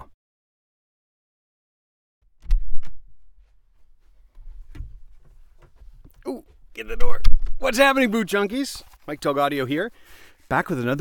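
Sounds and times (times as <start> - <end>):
knocks and rustles of movement: 2.4 - 7.8.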